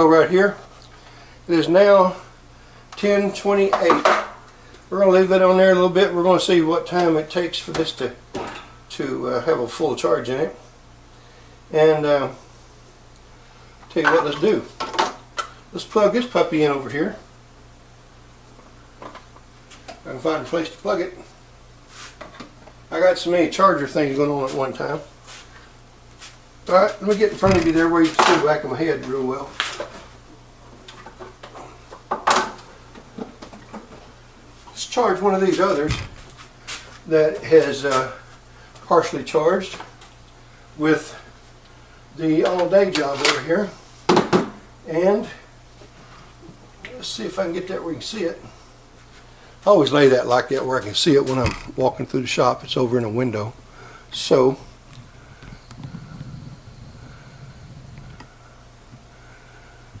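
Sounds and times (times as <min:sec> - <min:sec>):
steady low hum: 0:00.0 - 1:00.0
low rumbling: 0:54.9 - 0:59.2.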